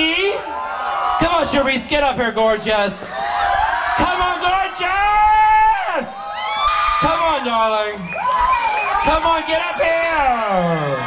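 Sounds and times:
crowd shouting: 0.0s - 11.0s
high-pitched excited whoop: 3.0s - 11.0s.

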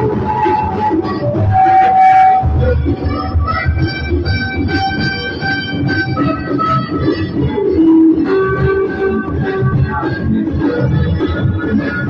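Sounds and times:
low rhythmic accompaniment: 0.0s - 12.0s.

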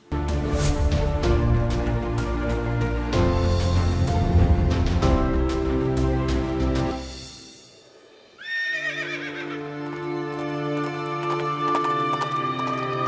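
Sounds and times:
music: 0.0s - 13.0s
horse whinnying: 8.4s - 9.7s
hooves clip-clopping: 9.4s - 13.0s.

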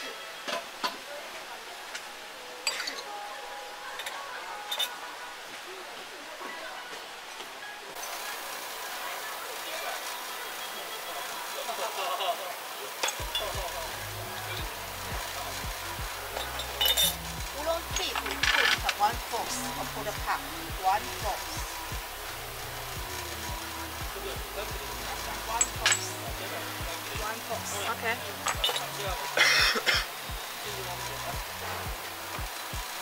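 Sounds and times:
background music with steady beat: 0.0s - 33.0s.

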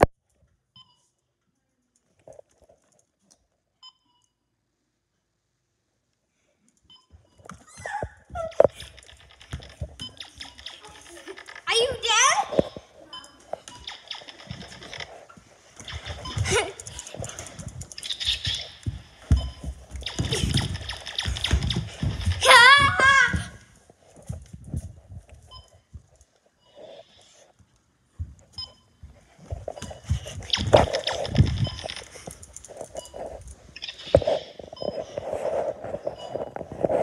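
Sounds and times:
phone microphone rubbing and knocking: 32.8s - 37.0s.

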